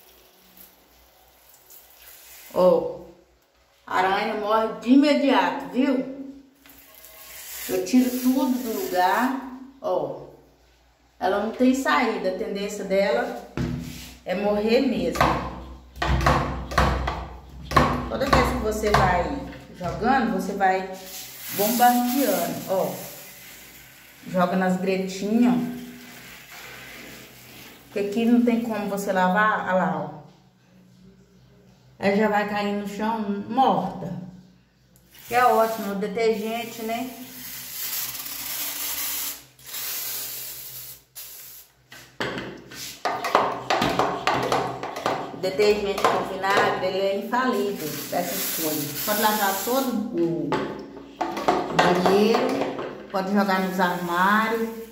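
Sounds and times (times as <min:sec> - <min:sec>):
spray bottle squirting: 0:37.1 - 0:41.7, 0:47.6 - 0:49.9.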